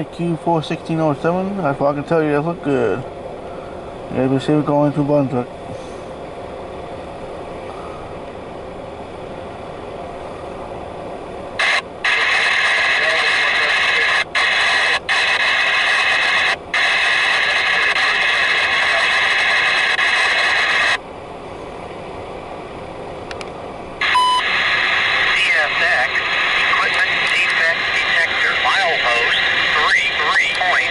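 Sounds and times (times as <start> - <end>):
radio scanner static: 11.6 - 21.0, 24.0 - 30.9
click: 23.3 - 23.6.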